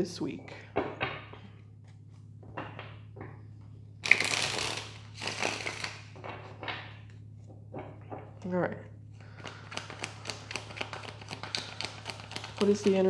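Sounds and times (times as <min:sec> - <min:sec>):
cards being shuffled: 0:04.0 - 0:06.7, 0:09.4 - 0:13.0.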